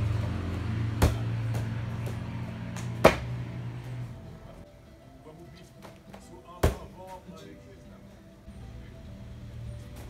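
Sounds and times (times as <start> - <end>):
feet landing on foam mat: 2.8 - 3.3.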